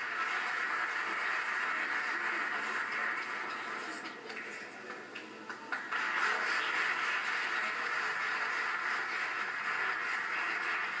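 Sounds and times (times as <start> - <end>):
spectators applauding: 0.0 - 11.0.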